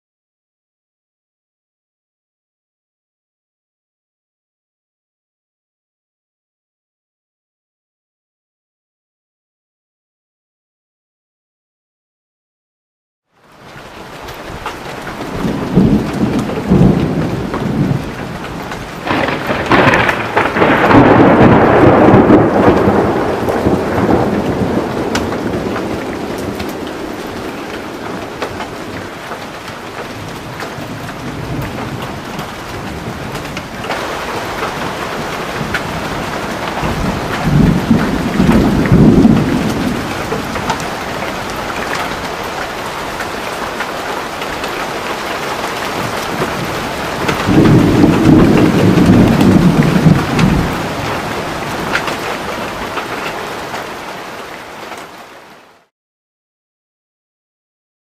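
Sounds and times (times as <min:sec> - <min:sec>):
heavy rain falling: 0:13.3 - 0:55.9
thunder rumbling: 0:14.5 - 0:53.7.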